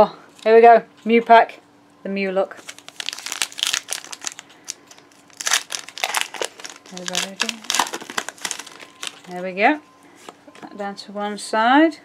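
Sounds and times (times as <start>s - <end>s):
foil wrapper crinkling: 2.5s - 9.5s.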